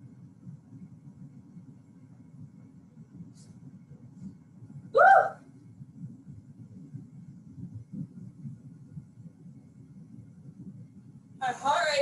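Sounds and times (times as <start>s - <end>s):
low steady hum: 0.0s - 12.0s
woman yelping: 5.0s - 5.4s.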